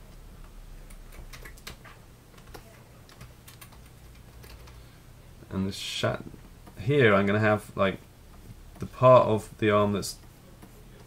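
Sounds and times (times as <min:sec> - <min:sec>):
faint steady low hum: 0:00.0 - 0:11.0
computer keyboard keys clicking: 0:00.4 - 0:04.8.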